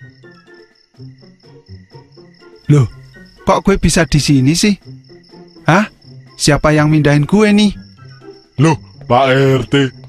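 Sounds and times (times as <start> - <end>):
crickets chirping: 0.0 - 10.0
quiet background music: 0.0 - 10.0.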